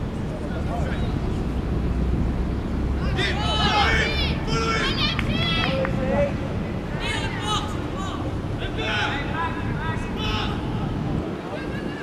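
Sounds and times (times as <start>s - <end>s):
children shouting: 3.0s - 5.9s.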